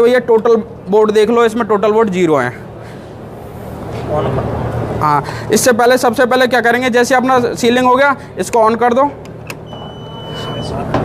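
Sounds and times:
low mechanical whirr: 9.3s - 11.0s
high electronic beep: 9.6s - 10.8s.

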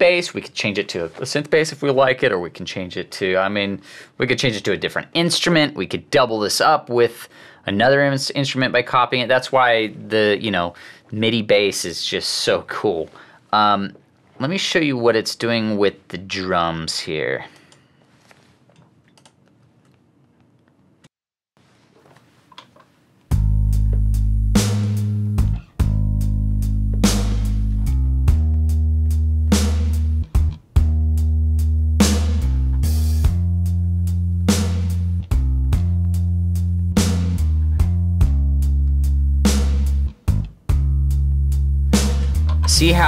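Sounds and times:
electric bass groove: 23.3s - 43.0s
sharp drum hits: 42.0s - 43.0s.

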